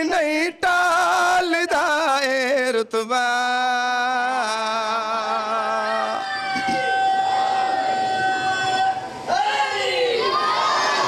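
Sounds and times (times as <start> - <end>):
voices calling out: 5.8 - 11.0.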